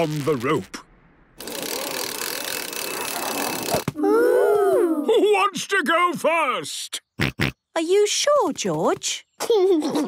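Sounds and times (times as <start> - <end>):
man speaking: 0.0 - 0.9
rope paying out whirr: 1.4 - 3.9.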